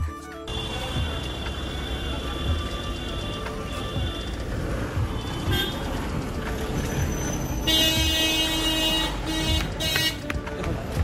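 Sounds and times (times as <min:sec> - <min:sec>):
road traffic noise: 0:00.0 - 0:11.0
vehicle horn long honk: 0:05.2 - 0:05.8, 0:07.7 - 0:10.2.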